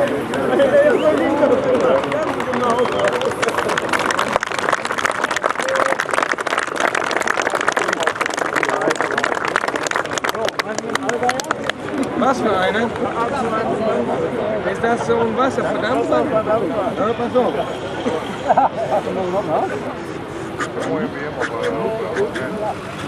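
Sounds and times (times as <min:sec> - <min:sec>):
men talking: 0:00.0 - 0:04.2, 0:07.3 - 0:23.0.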